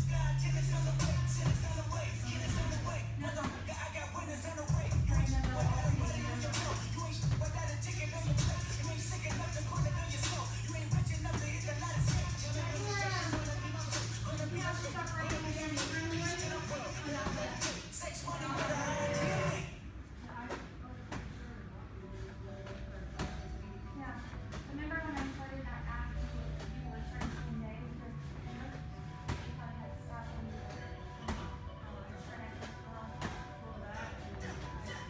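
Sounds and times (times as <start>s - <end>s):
music: 0.0s - 19.8s, 22.0s - 35.0s
medicine ball thudding: 2.3s - 3.8s, 4.7s - 17.7s, 22.8s - 23.5s, 26.6s - 27.6s, 29.2s - 29.6s, 31.2s - 31.6s, 32.6s - 33.5s.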